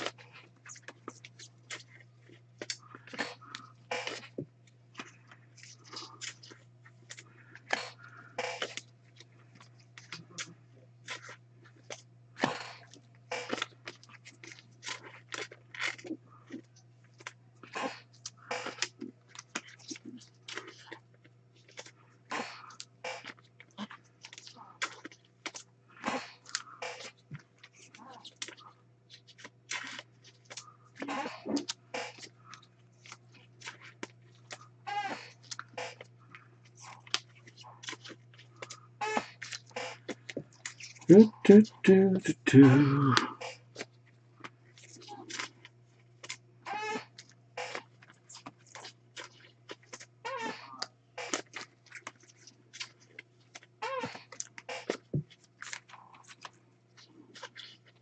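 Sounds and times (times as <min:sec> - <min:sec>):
wrappers crinkling and rustling: 0:00.0 - 0:41.1, 0:43.7 - 0:58.0
short squeaky sounds: 0:39.0 - 0:40.0, 0:46.7 - 0:47.9, 0:50.2 - 0:51.4, 0:53.8 - 0:55.0.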